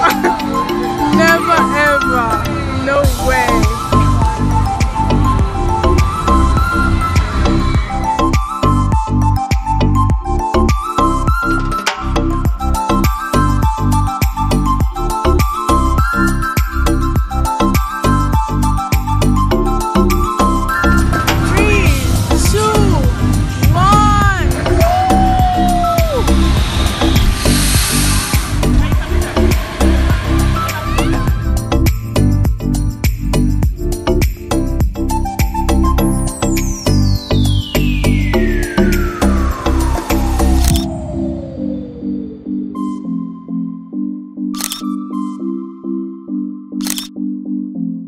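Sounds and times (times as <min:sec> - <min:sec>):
music with pulsing low chords: 0:00.0 - 0:48.0
music with clicking beat: 0:08.3 - 0:22.9, 0:31.6 - 0:40.9
camera shutter clicks: 0:40.6 - 0:40.9, 0:44.6 - 0:45.0, 0:46.8 - 0:47.1.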